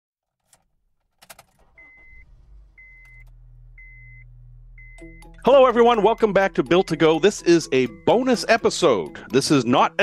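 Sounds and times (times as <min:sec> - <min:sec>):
low steady hum: 0:01.6 - 0:08.1
vehicle warning chime beeping: 0:01.6 - 0:09.3
clicks: 0:02.8 - 0:03.4.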